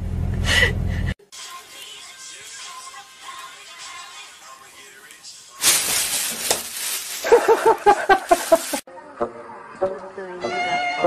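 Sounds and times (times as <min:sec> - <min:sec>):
plastic bag rustling: 0:05.6 - 0:08.8
rapid human laughter: 0:07.2 - 0:08.8.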